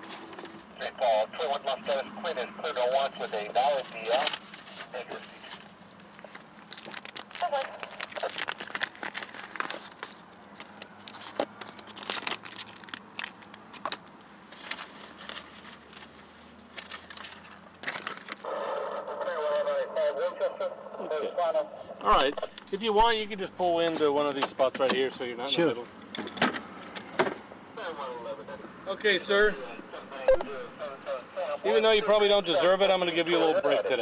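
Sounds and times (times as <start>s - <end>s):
muffled indistinct voices: 0.8s - 5.5s, 18.5s - 24.9s, 27.7s - 34.0s
low steady hum: 29.5s - 31.4s.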